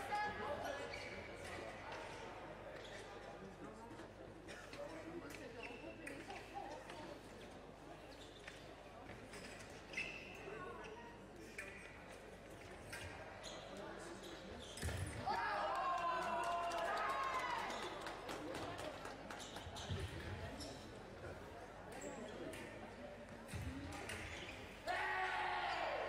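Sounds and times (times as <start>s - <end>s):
loud shout: 15.2s - 17.8s, 24.9s - 26.0s.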